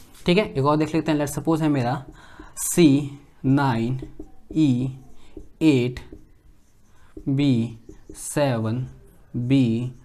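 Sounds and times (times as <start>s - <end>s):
marker scratching on whiteboard: 0.0s - 10.0s
person speaking: 0.0s - 10.0s.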